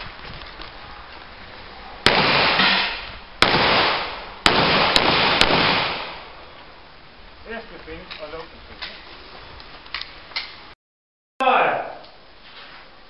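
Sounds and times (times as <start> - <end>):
long echo of gunshots: 2.0 - 6.4
pistol shots: 2.1 - 6.3.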